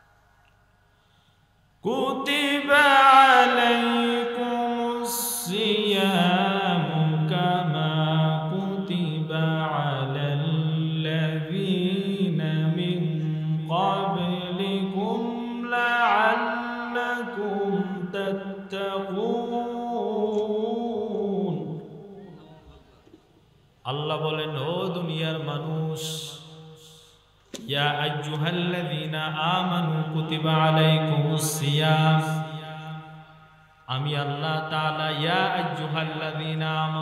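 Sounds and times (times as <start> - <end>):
man chanting melodic recitation: 1.8 - 22.4, 23.9 - 26.8, 27.6 - 33.1, 33.9 - 37.0.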